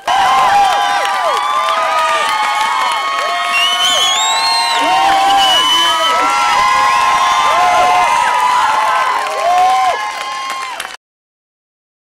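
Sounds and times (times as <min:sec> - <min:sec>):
crowd cheering and clapping: 0:00.0 - 0:11.0.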